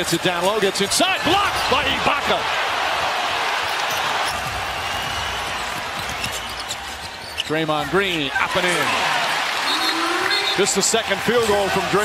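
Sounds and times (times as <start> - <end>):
arena crowd roar: 0.0 - 7.0, 7.8 - 12.0.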